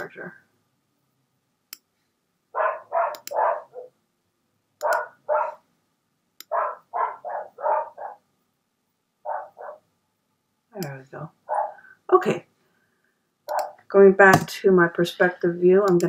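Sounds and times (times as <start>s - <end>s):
dog barking: 2.6s - 3.9s, 4.8s - 5.6s, 6.5s - 8.2s, 9.2s - 9.8s, 11.5s - 11.9s, 13.5s - 13.8s.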